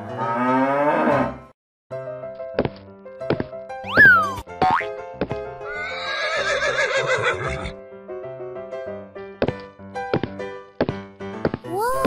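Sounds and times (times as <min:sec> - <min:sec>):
cartoon music with steady beat: 0:02.6 - 0:05.5
horse whinny: 0:05.7 - 0:07.8.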